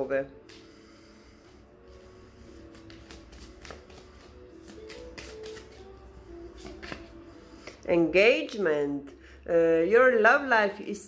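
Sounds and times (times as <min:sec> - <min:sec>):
faint background music: 0:00.0 - 0:11.0
cards being shuffled: 0:02.5 - 0:07.8.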